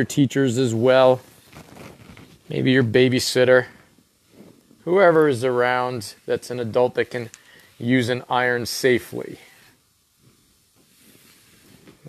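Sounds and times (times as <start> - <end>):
faint steady hiss: 0.0 - 12.0
soft small noises: 0.0 - 12.0.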